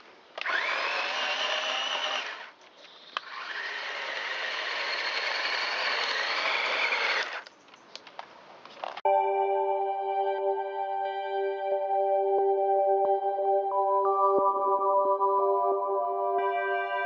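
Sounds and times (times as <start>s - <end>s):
toy tank motors whining: 0.4s - 7.5s.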